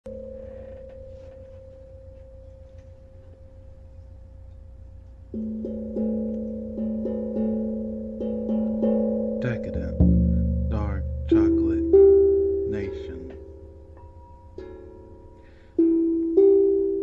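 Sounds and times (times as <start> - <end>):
singing bowl ringing: 0.1 - 17.0
steel tongue drum notes: 0.1 - 17.0.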